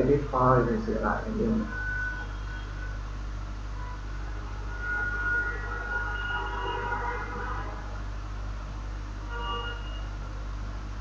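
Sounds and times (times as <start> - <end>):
low electrical hum: 0.0 - 11.0
room noise: 0.0 - 11.0
faint high thin tones: 3.8 - 7.9, 9.3 - 10.3.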